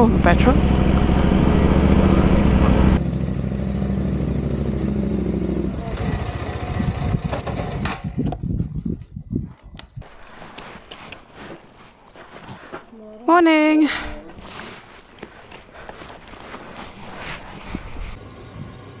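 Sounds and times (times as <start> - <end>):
motorcycle engine running: 0.0 - 8.8.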